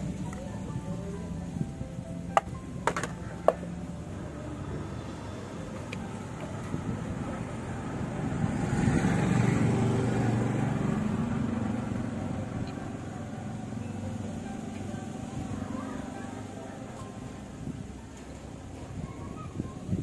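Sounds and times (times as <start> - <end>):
vehicle engine passing by: 0.0 - 20.0.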